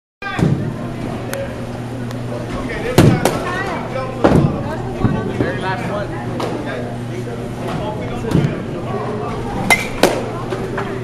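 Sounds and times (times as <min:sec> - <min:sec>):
steady low hum: 0:00.2 - 0:11.0
voices: 0:00.2 - 0:11.0
baseball bat hitting ball: 0:09.7 - 0:10.3.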